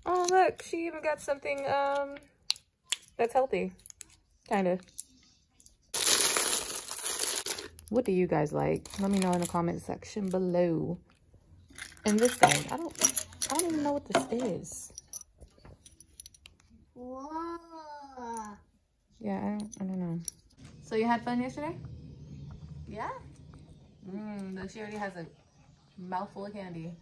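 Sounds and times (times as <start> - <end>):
candy wrappers rustling: 5.9 - 8.1, 8.7 - 10.4.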